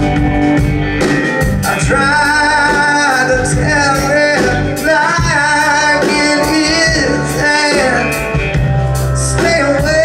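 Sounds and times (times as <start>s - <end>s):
bass: 0.0s - 10.0s
drums: 0.0s - 10.0s
electric guitars: 0.0s - 10.0s.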